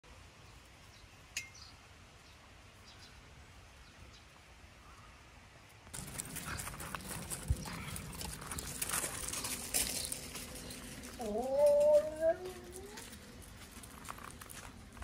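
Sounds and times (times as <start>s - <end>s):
dog paws crunching on gravel: 5.9s - 15.0s
drawn-out dog vocal sound: 6.0s - 13.4s.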